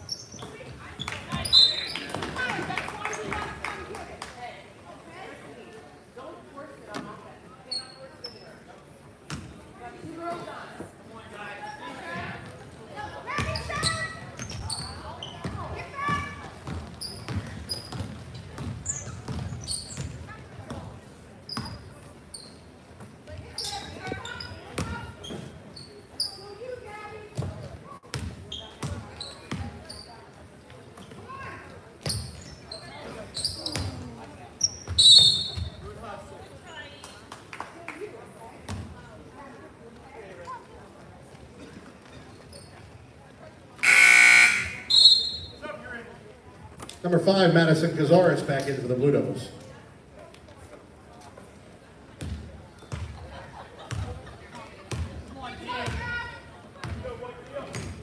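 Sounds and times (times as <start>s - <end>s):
sneaker squeaks: 0.0s - 2.4s, 6.9s - 8.7s, 13.3s - 26.8s, 27.4s - 36.0s, 42.0s - 43.0s, 43.8s - 45.7s, 52.2s - 53.2s
referee's whistle blast: 43.8s - 45.6s.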